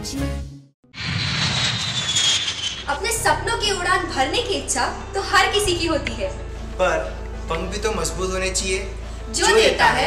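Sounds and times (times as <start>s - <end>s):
jet airliner flying low: 1.0s - 3.2s.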